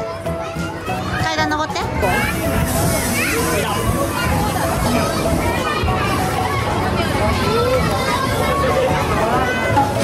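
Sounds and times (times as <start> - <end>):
background music: 0.0 - 10.0
children's voices playing: 0.0 - 10.0.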